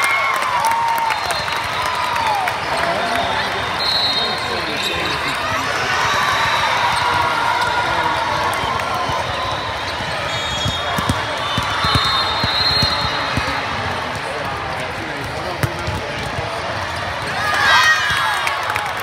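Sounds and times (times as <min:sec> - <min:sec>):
crowd shouts and cheers: 0:00.0 - 0:19.0
crowd chatter: 0:01.5 - 0:19.0
volleyballs being hit: 0:10.5 - 0:17.4.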